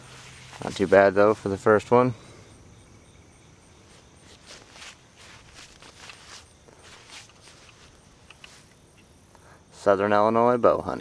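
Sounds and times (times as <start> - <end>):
footsteps on grass: 0.0 - 1.9, 3.7 - 9.0.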